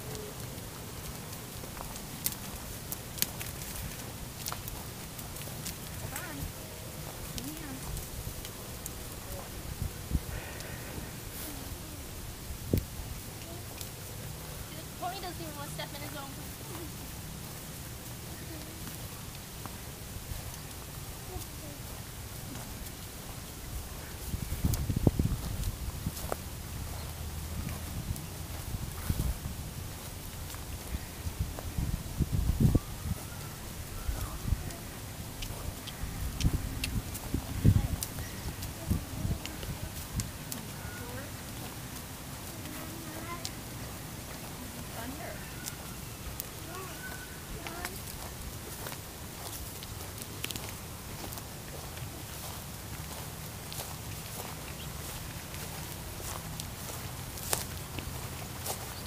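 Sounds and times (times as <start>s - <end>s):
faint voices: 0.0s - 59.0s
hooves and footsteps on dirt: 0.0s - 59.0s
steady low rumble: 33.6s - 45.4s.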